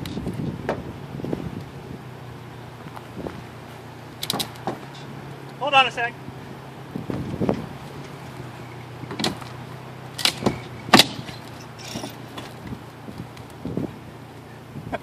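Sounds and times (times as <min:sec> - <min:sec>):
knocks and thuds: 0:00.6 - 0:00.9, 0:04.2 - 0:05.0, 0:09.0 - 0:09.6, 0:10.2 - 0:12.7.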